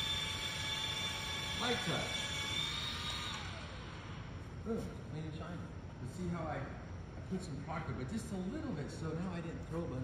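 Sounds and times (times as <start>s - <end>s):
polisher motor whine: 0.0s - 4.2s.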